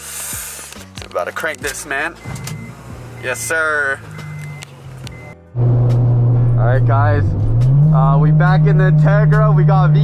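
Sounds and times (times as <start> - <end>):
car engine droning inside cabin: 2.4 - 10.0.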